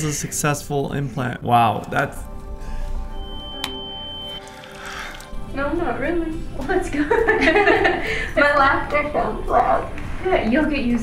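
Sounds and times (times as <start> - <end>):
soft background music: 0.0 - 11.0
high-pitched electronic beep: 3.1 - 4.4.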